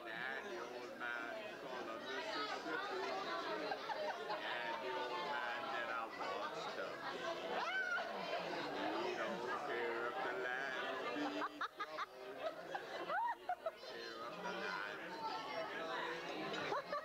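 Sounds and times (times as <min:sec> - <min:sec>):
hubbub of overlapping conversations: 0:00.0 - 0:17.0.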